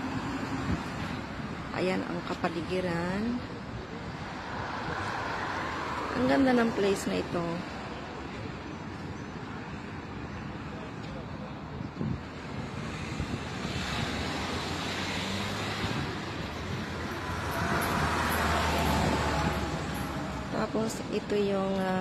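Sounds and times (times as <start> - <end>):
road traffic passing: 0.0 - 22.0.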